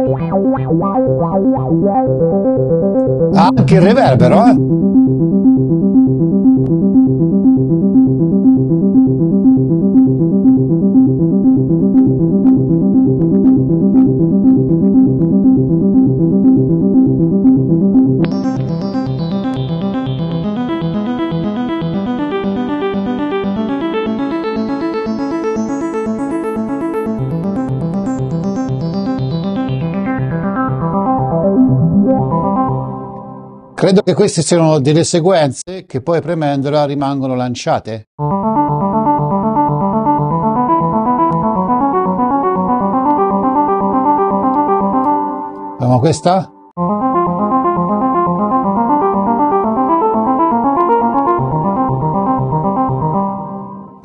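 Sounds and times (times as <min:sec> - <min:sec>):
synthesizer playing repeating notes: 0:00.0 - 0:33.8, 0:38.2 - 0:54.0.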